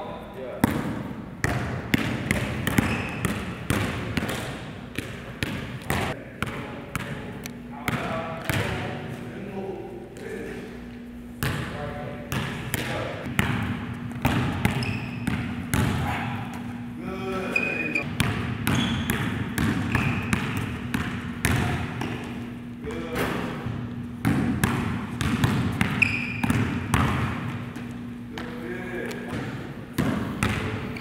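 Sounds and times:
basketball dribbling on gym floor: 0.6s - 9.1s, 11.4s - 16.7s, 17.6s - 22.6s, 23.3s - 31.0s
sneakers squeaking on floor: 0.6s - 9.3s, 13.3s - 22.6s, 23.6s - 31.0s.

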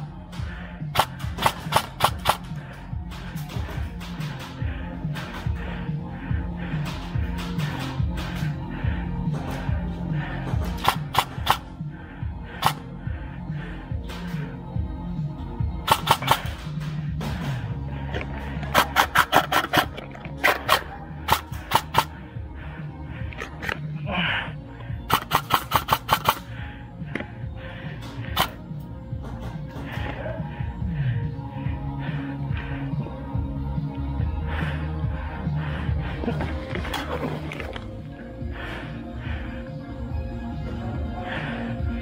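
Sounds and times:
background music: 0.0s - 42.0s
airsoft guns firing rapid shots: 0.9s - 2.6s, 10.7s - 11.8s, 15.8s - 16.8s, 18.7s - 22.1s, 25.1s - 26.5s.

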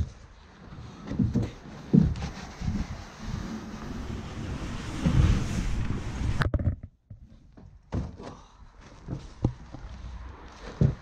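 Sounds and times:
footsteps on wooden stairs: 0.0s - 2.4s, 7.9s - 11.0s.

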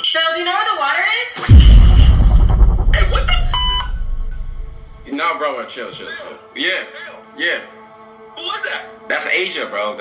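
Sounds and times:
deep bass rumble: 1.4s - 5.0s
short electronic beep: 3.3s - 4.8s.

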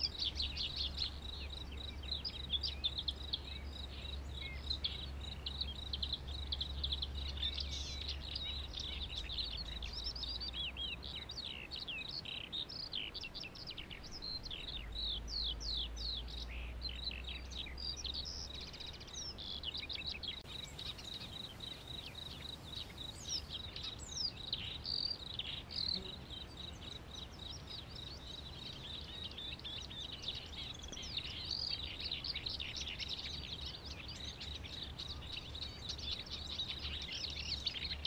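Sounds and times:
small birds chirping: 0.0s - 38.0s.

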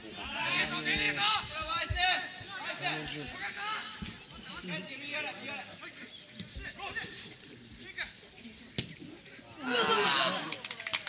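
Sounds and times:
players shouting: 0.1s - 5.9s, 9.5s - 10.5s.

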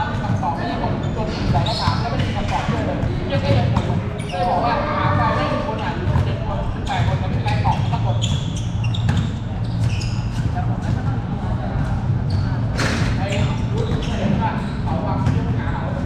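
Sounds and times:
basketball bouncing on court: 6.0s - 15.6s.

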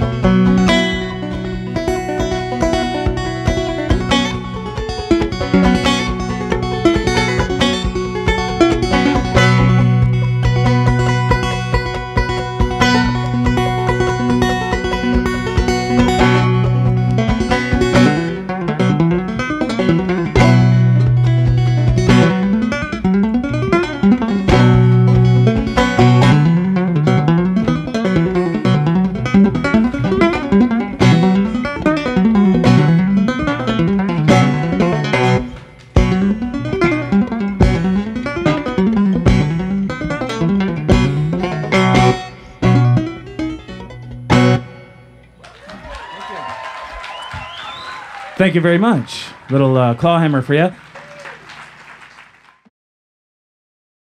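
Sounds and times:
percussive hits on banjo: 0.0s - 44.8s
banjo plucked notes: 0.0s - 45.4s.

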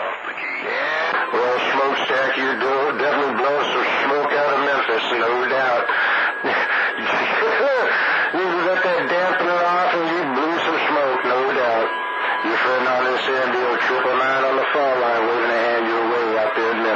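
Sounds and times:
voices over radio: 0.0s - 16.9s.

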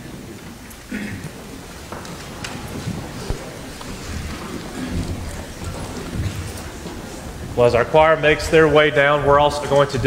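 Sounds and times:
shuffling footsteps: 0.0s - 7.9s
clothing and paper rustling: 0.4s - 7.4s.

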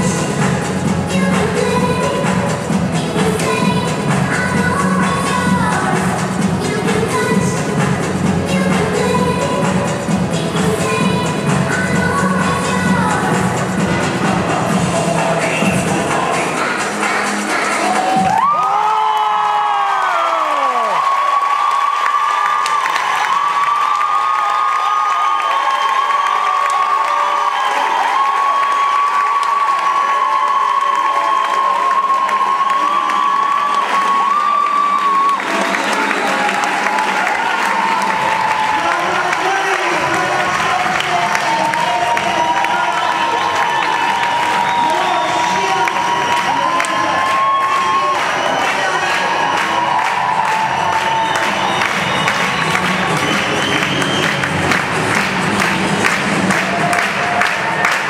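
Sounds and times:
crowd cheering and applauding: 0.0s - 58.0s.

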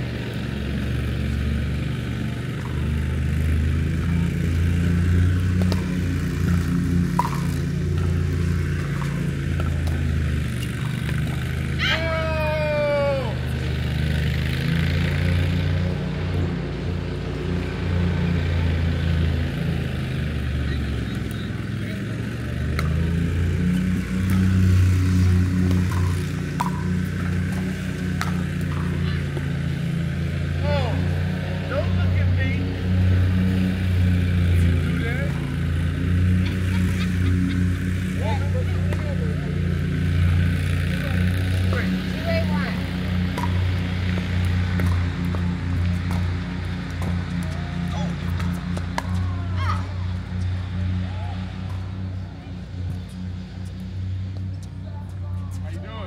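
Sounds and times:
loud steady low hum: 0.0s - 56.0s
voices: 2.7s - 13.8s, 20.3s - 32.9s, 34.2s - 56.0s
paddles hitting plastic ball: 5.2s - 11.7s, 22.6s - 23.2s, 25.3s - 29.6s, 43.1s - 49.3s.

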